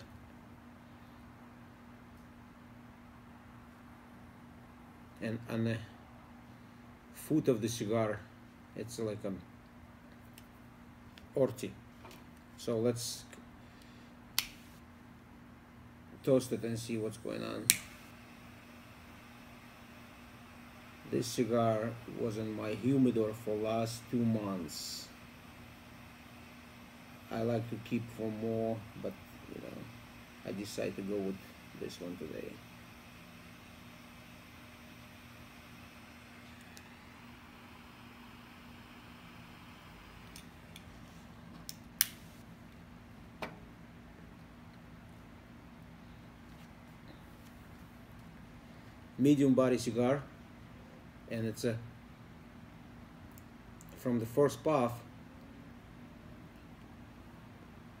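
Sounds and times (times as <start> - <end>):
steady low hum: 0.0 - 58.0
lighter click: 14.4 - 14.6, 17.7 - 18.0
torch lighter flame hissing: 17.3 - 42.4.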